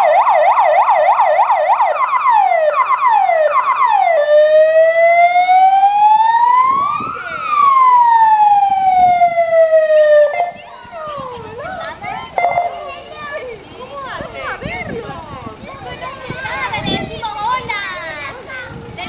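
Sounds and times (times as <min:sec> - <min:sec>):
fire engine siren: 0:00.0 - 0:11.5.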